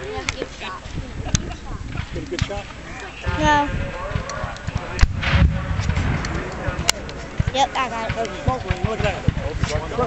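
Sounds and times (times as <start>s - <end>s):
cannon shot: 3.2s - 10.0s.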